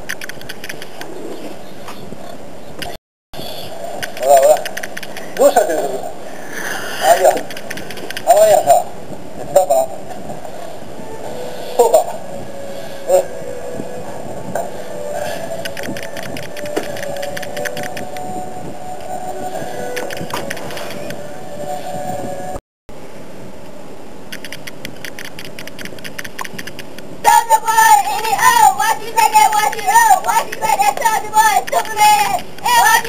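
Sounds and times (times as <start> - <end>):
steady low hum: 3.4 - 33.0
voice fragments: 6.9 - 10.0, 27.2 - 33.0
rapid mechanical clicking: 24.3 - 27.1.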